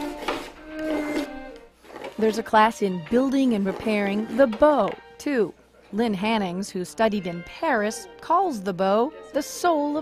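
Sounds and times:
scraping rubbing sound: 0.0s - 2.5s
slow violin melody: 0.0s - 5.5s.

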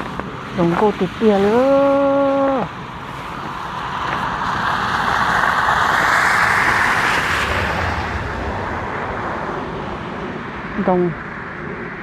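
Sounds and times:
car passing by: 0.0s - 12.0s.

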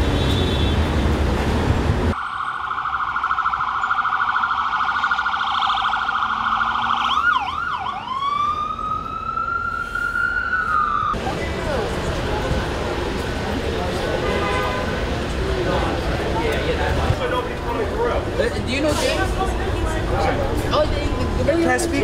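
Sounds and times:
traffic noise: 0.0s - 22.0s
ambulance siren: 2.1s - 11.2s.

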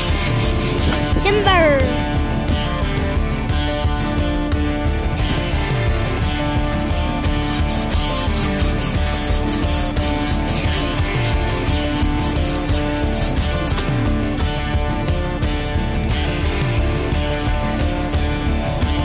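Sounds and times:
bow saw cutting log: 0.0s - 1.2s, 7.1s - 14.2s
guitar music: 0.0s - 19.0s.

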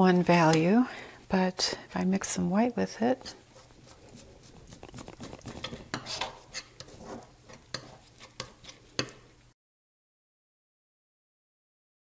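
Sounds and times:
palette knife scraping and tapping: 3.2s - 9.2s.

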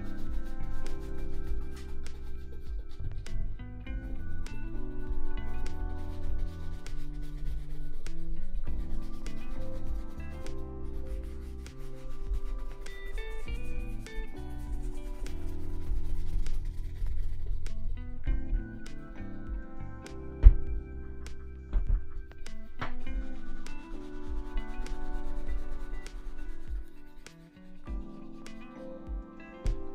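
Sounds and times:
brush rubbing over leather shoe: 0.0s - 3.3s, 4.0s - 18.0s, 23.1s - 28.2s
background music with sustained notes: 0.0s - 29.9s.

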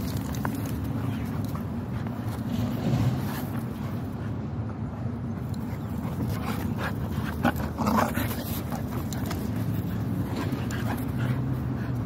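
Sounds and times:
dogs vocalizing while playing: 0.0s - 12.0s.

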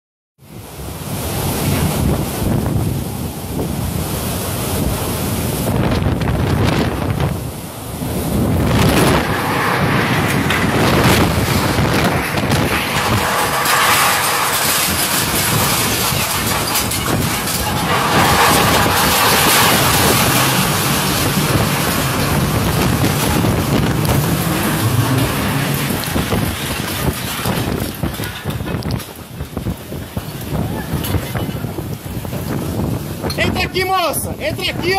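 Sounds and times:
storm wind: 0.4s - 34.9s
heavy rain: 0.5s - 33.3s
wind buffeting microphone: 0.5s - 34.9s.

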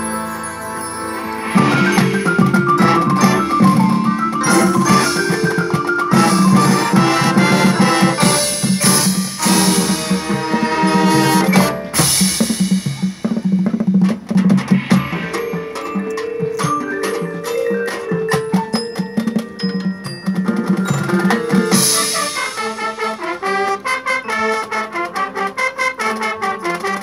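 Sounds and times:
brass instruments: 0.0s - 18.9s, 20.5s - 27.0s
snare and bass drums: 1.6s - 24.0s.

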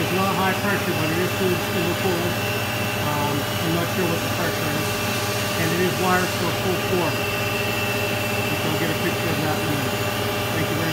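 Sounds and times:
high machine whine: 0.0s - 10.9s
machining center humming: 0.0s - 10.9s.

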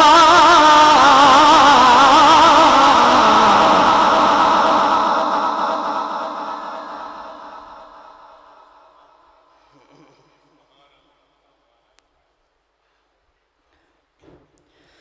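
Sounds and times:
man reciting melodically: 0.0s - 6.4s.

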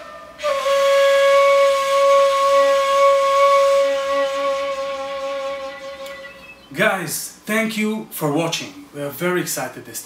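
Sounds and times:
ney flute long breathy note: 0.0s - 6.5s.

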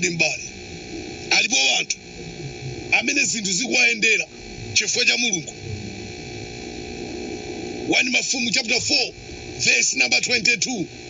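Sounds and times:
man speaking: 0.0s - 0.5s, 1.3s - 2.0s, 2.9s - 5.5s, 7.9s - 10.9s
background hiss and low hum: 0.0s - 11.0s.

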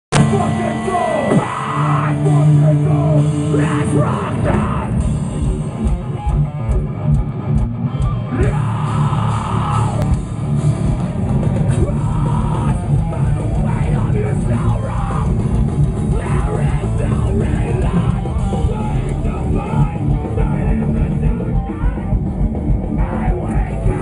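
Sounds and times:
heavy metal band playing: 0.1s - 24.0s.

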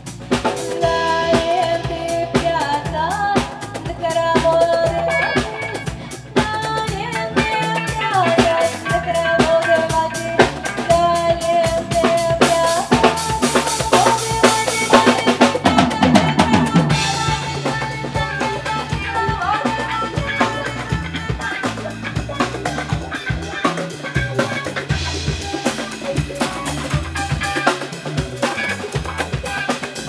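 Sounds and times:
busy drum-kit groove: 0.0s - 30.0s
jazz funk band playing: 0.0s - 30.0s
bright cymbal wash: 0.3s - 2.9s.

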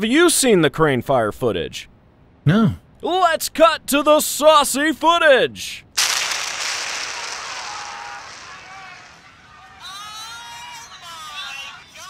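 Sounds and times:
loud rushing noise: 6.0s - 9.6s.

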